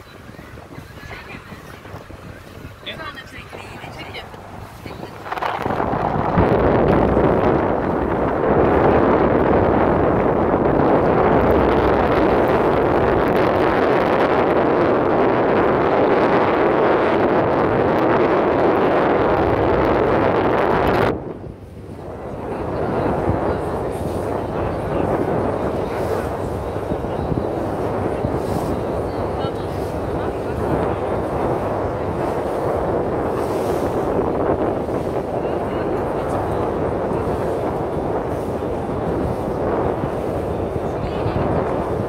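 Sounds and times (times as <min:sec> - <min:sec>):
boat moving on sea: 0:00.0 - 0:42.0
wind rushing over microphone: 0:00.0 - 0:42.0.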